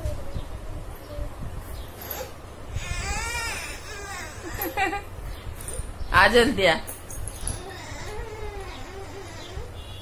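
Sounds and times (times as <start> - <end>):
toddler vocalising: 2.7 - 4.8, 7.6 - 9.8.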